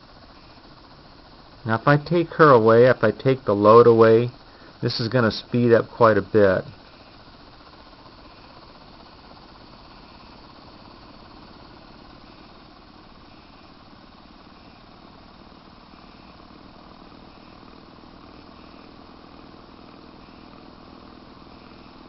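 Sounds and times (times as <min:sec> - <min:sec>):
electrostatic motor hissing whir: 0:00.0 - 0:22.0.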